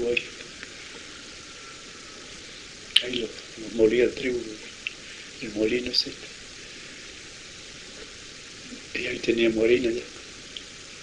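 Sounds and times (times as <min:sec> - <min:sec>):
recording hiss: 0:00.0 - 0:11.0.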